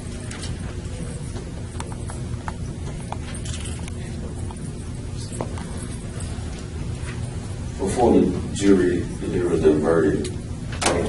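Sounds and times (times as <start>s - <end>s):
large hall rumble: 0.0s - 11.0s.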